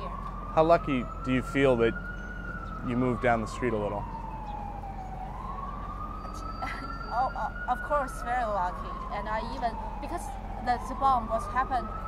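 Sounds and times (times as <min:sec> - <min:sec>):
low street rumble: 0:00.0 - 0:12.0
siren wailing: 0:00.0 - 0:12.0.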